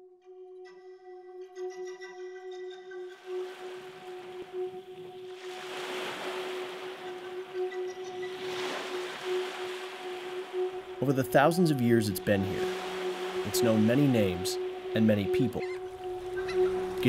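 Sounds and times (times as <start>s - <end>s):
sustained musical drone: 0.2s - 17.0s
waves on a pebble shore: 5.4s - 7.3s, 8.2s - 15.6s.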